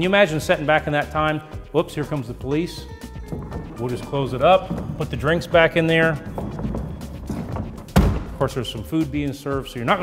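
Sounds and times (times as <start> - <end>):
background music: 0.0 - 10.0.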